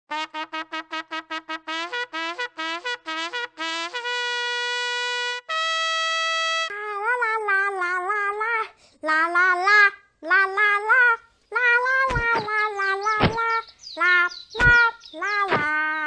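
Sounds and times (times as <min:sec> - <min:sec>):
child singing wordless tune: 0:06.7 - 0:16.0
faint high chirps: 0:12.1 - 0:16.0.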